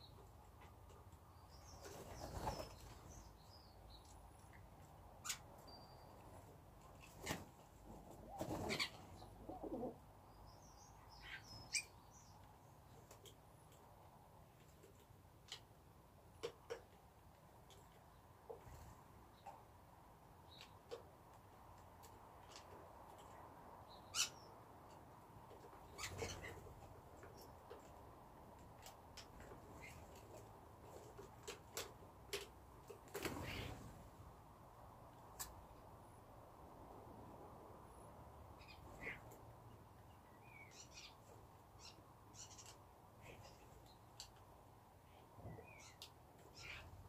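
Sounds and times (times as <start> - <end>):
small birds chirping: 0.0 - 7.4, 8.3 - 15.6, 20.4 - 33.9, 38.4 - 47.0.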